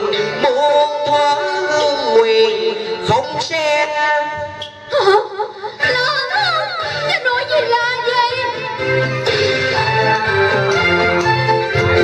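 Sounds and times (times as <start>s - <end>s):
instrumental accompaniment: 5.9s - 12.0s.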